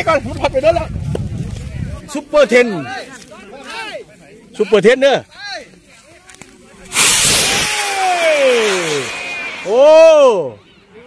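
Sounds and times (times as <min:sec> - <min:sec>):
rocket launch rushing blast: 0:06.9 - 0:10.8
falling whistling tone: 0:06.9 - 0:11.0.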